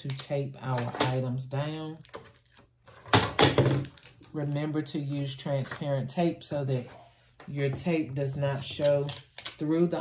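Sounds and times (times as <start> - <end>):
knocks and rattles on table: 2.9 - 4.0.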